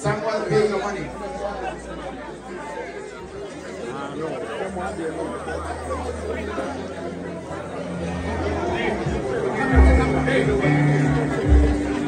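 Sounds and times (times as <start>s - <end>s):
crowd chattering in a hall: 0.0s - 12.0s.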